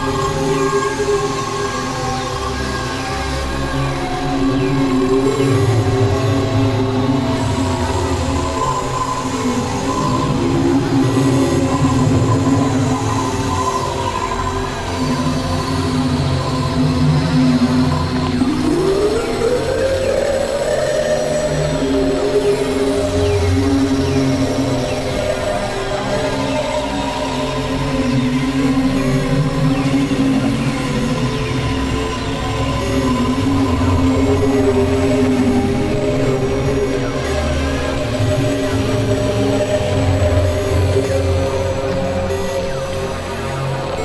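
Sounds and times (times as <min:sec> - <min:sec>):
synthesizer drones: 0:00.0 - 0:44.0.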